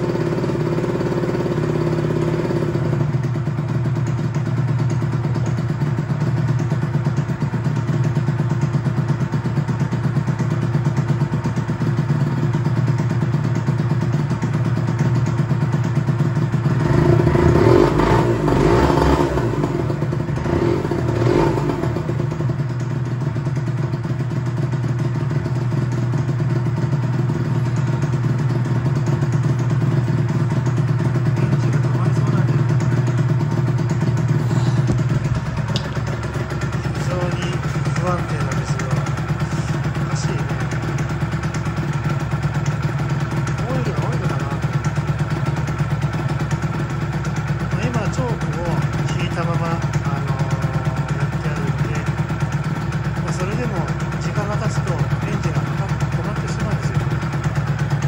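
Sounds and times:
motorcycle engine idling and blipping: 0:00.0 - 0:58.0.

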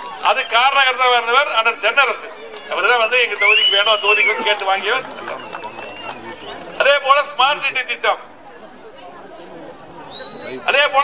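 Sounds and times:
man speaking over loudspeaker: 0:00.2 - 0:05.5, 0:06.8 - 0:08.3, 0:10.5 - 0:11.0
faint background voices: 0:02.2 - 0:10.9.

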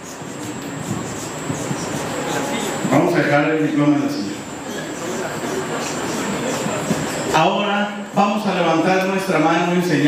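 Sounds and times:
rustling and shuffling: 0:00.0 - 0:03.1
crowd stirring in a hall: 0:00.0 - 0:10.0.

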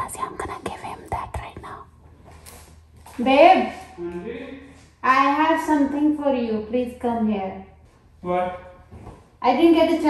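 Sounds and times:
woman whispering: 0:00.0 - 0:01.9.

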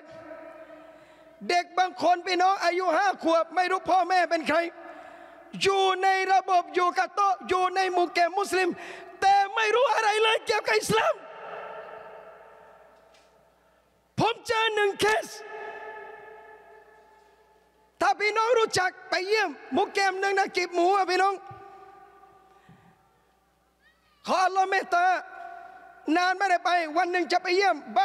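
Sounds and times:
man speaking over loudspeaker: 0:00.0 - 0:12.8, 0:14.2 - 0:17.0, 0:18.0 - 0:22.1, 0:24.3 - 0:28.0
man lecturing through pa system: 0:01.4 - 0:11.2, 0:14.2 - 0:16.8, 0:24.3 - 0:28.0
echo tail ringing: 0:11.2 - 0:14.0, 0:15.3 - 0:17.9.

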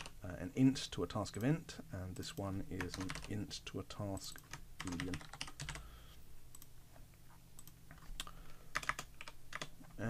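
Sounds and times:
computer keyboard typing: 0:02.4 - 0:03.4, 0:04.2 - 0:05.9, 0:07.6 - 0:09.8.

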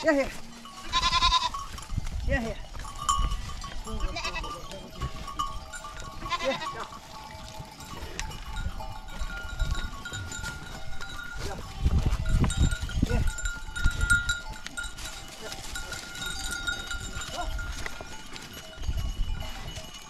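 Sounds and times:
goats bleating: 0:00.0 - 0:01.7, 0:03.8 - 0:08.3.

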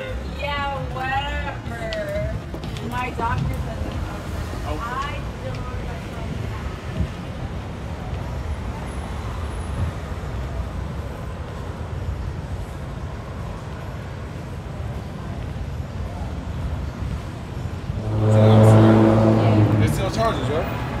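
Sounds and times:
traffic rumble: 0:00.0 - 0:21.0
loud low-pitched tone: 0:17.8 - 0:21.0.

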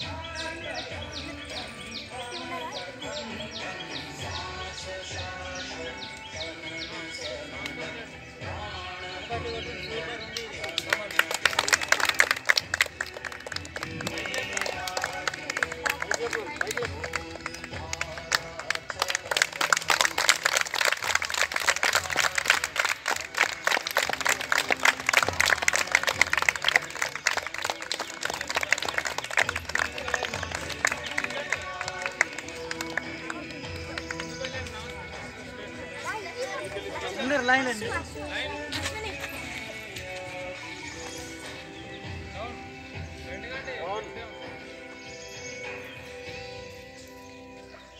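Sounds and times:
music: 0:00.0 - 0:47.9
voices: 0:00.0 - 0:47.9
children clapping: 0:10.3 - 0:35.4.

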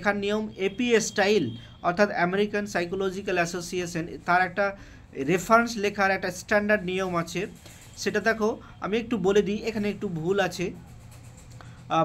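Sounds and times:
person speaking: 0:00.0 - 0:12.0.

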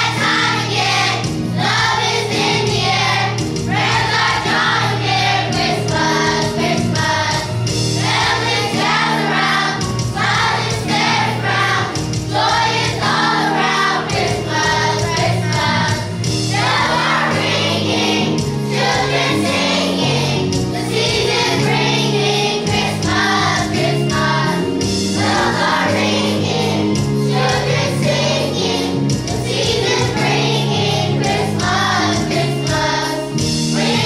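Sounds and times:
children's choir singing: 0:00.0 - 0:34.0
instrumental accompaniment: 0:00.0 - 0:34.0.

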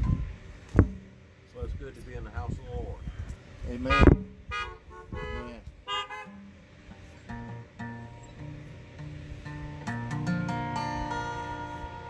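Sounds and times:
car horns honking: 0:03.8 - 0:08.2.

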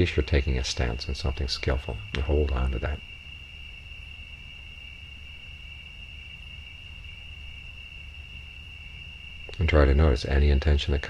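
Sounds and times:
crickets trilling: 0:00.0 - 0:11.0
low background rumble: 0:00.0 - 0:11.0.

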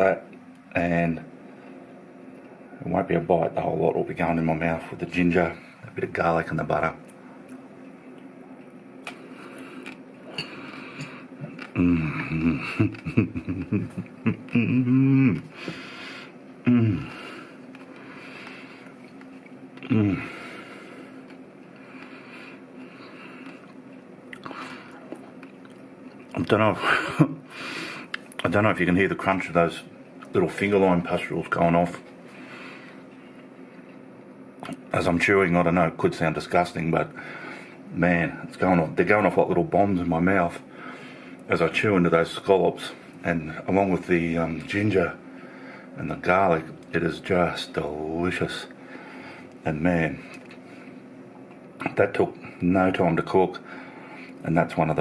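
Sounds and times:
faint steady hum: 0:00.0 - 0:55.0
soft chewing: 0:07.0 - 0:11.8, 0:17.6 - 0:19.9, 0:21.1 - 0:26.5
person chewing wetly: 0:23.4 - 0:26.4.

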